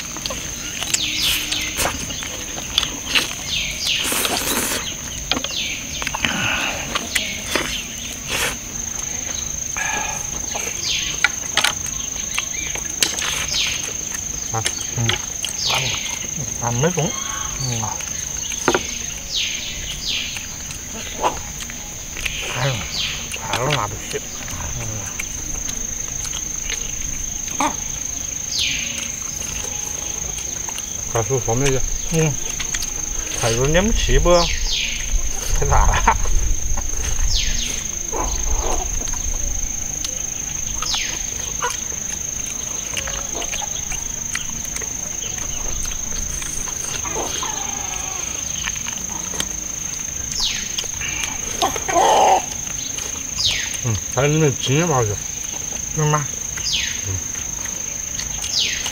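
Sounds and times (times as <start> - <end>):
murmured mm sounds: 0.0 - 19.2, 20.4 - 58.9
high-pitched insect drone: 0.0 - 58.9
people chewing meat: 0.0 - 58.9.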